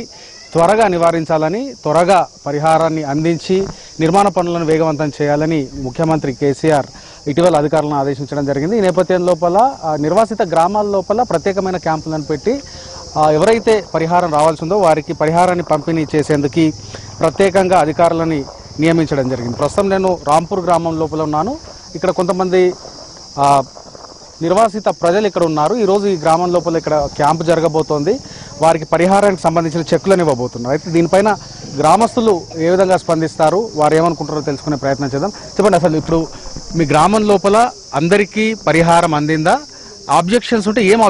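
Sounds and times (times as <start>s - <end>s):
man talking: 0.0s - 22.8s, 23.4s - 23.7s, 24.4s - 41.0s
person speaking: 0.0s - 22.8s
high-pitched insect hum: 0.0s - 41.0s.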